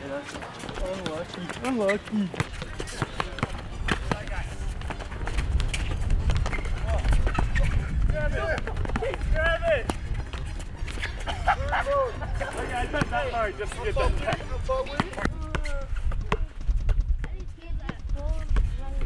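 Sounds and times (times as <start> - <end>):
basketball bouncing: 0.6 - 7.7, 8.5 - 10.5, 14.2 - 18.7.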